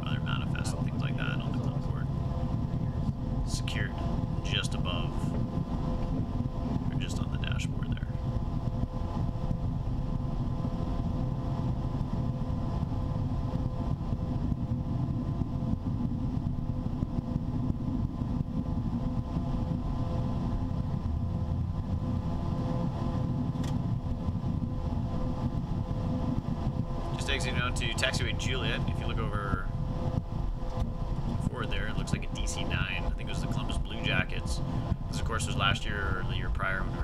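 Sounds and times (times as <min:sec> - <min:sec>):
jet engines humming: 0:00.0 - 0:37.0
runway rumble: 0:00.0 - 0:37.0.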